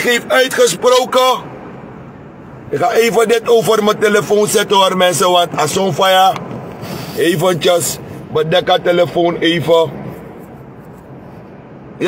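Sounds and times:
car cabin background hiss: 0.0 - 12.0.

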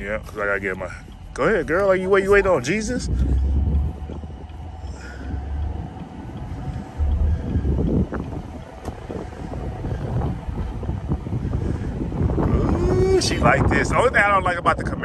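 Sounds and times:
car road and engine noise: 0.0 - 15.0
wind buffeting microphone: 0.0 - 15.0.

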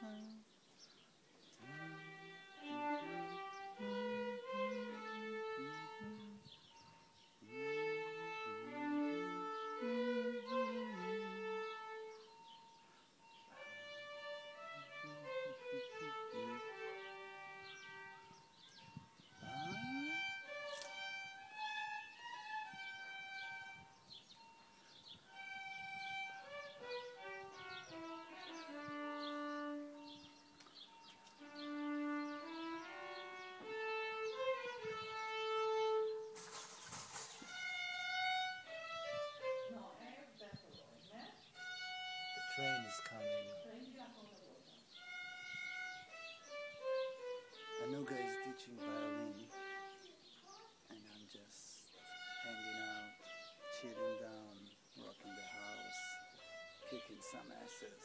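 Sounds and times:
violin playing slow melody: 0.0 - 36.6, 37.2 - 58.0
short rush of noise: 36.4 - 37.7.

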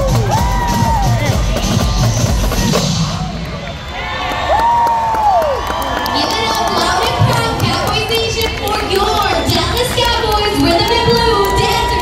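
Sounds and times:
drumline drums playing: 0.0 - 3.6
crowd cheering and shouting: 0.0 - 12.0.

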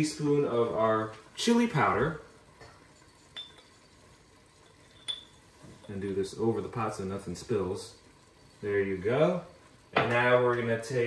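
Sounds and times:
teaspoon clinking container: 2.7 - 4.0, 4.6 - 5.9.

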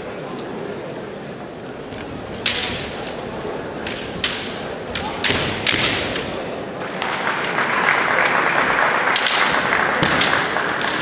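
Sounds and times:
bamboo swords clacking: 1.9 - 7.2, 9.1 - 11.0.

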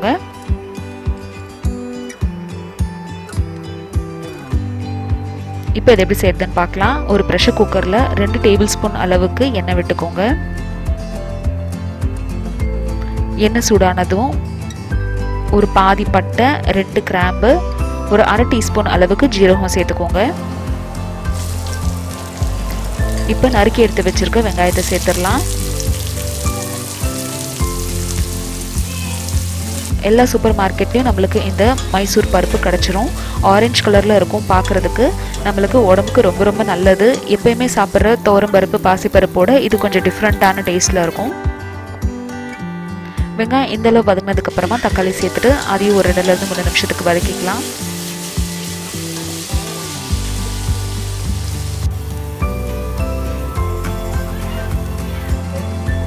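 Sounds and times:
background music: 0.0 - 56.0
onions sizzling in hot oil: 20.0 - 41.3, 44.5 - 55.3.

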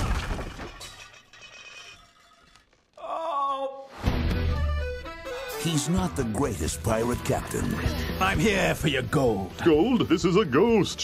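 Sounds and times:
crash with shattering: 0.0 - 2.7
soft music: 4.0 - 11.0.

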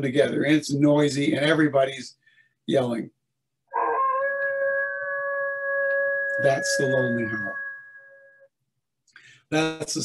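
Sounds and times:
wolf howling: 3.7 - 8.5.

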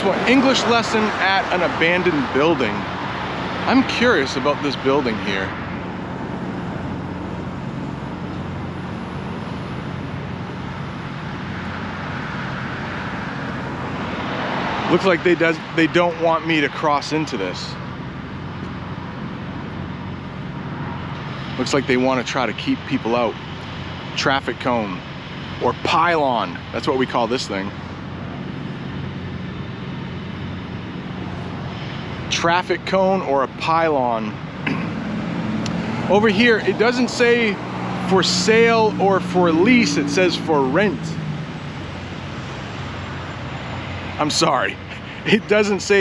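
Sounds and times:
low engine hum: 0.0 - 46.0
truck and traffic rumble: 0.0 - 46.0.

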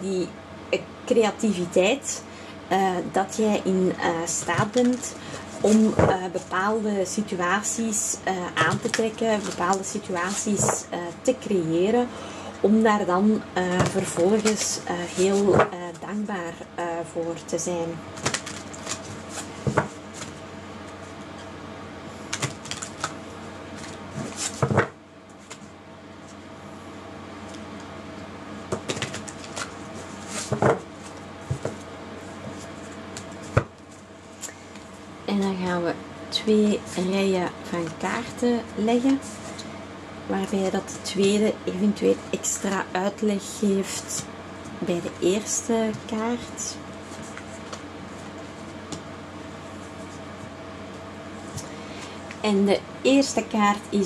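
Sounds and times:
faint steady hum: 0.0 - 54.0
cards being shuffled: 8.7 - 10.8, 13.8 - 15.7, 18.2 - 21.5, 22.3 - 26.4, 28.7 - 34.9.

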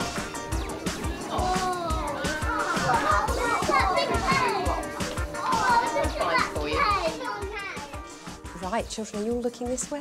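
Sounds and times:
background music: 0.0 - 10.0
children chattering and calling out: 0.4 - 8.2.

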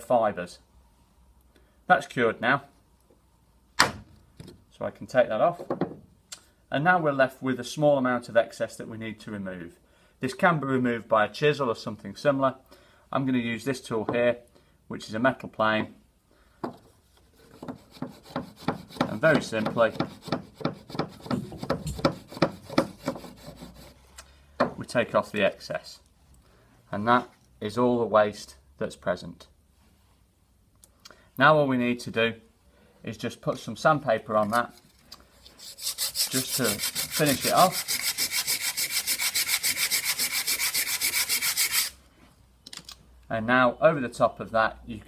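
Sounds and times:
metal plane scraping wood: 17.3 - 24.0, 35.5 - 42.0
sandpaper rubbing on wood: 35.6 - 42.0.

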